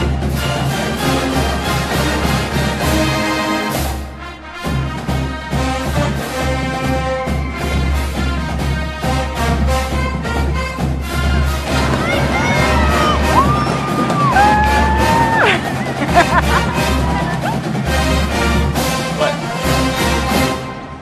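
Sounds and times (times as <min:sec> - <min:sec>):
pounding drum beat: 0:00.0 - 0:20.6
marching band brass: 0:00.0 - 0:21.0
sliding whoops: 0:11.8 - 0:17.6.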